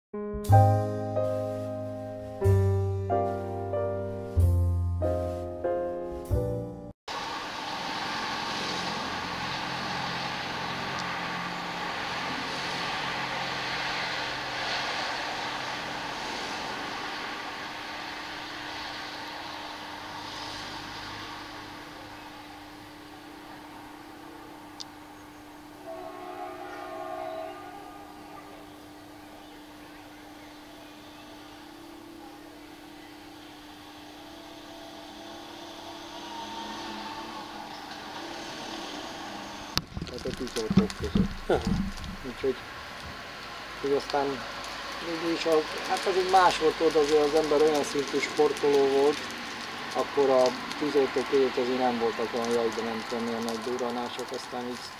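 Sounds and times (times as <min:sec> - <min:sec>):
distant low rumbling: 0:26.6 - 0:54.4.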